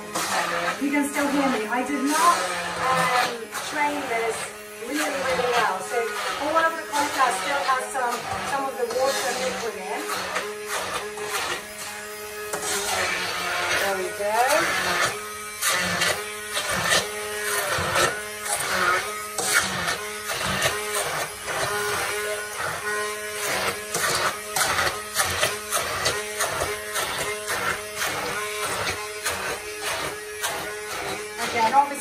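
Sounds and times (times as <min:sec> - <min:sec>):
hand blender motor hum: 0:00.0 - 0:32.0.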